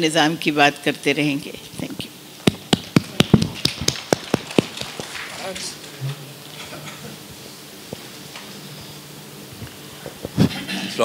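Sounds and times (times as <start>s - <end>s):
people clapping: 2.5s - 6.0s.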